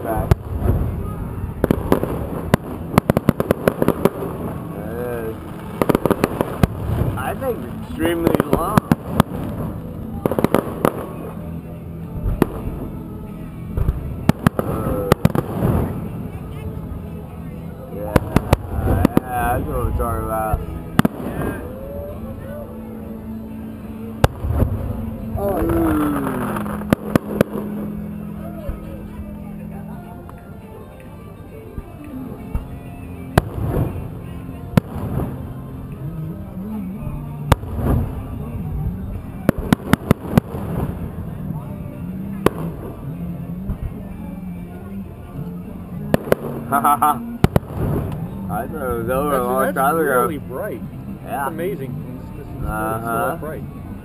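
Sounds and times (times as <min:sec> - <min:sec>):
fireworks bursting: 0:00.0 - 0:13.1, 0:13.7 - 0:16.8, 0:18.1 - 0:21.8, 0:24.1 - 0:28.1, 0:33.3 - 0:36.1, 0:37.5 - 0:41.6, 0:42.3 - 0:43.0, 0:46.0 - 0:50.5.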